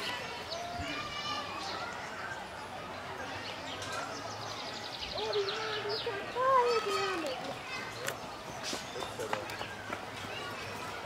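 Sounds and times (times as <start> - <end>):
children talking: 0.0 - 11.0
people talking: 0.0 - 11.0.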